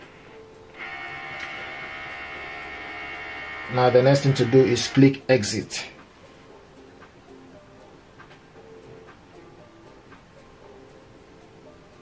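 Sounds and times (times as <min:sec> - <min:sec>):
scanner carriage motor whine: 0:00.0 - 0:05.1.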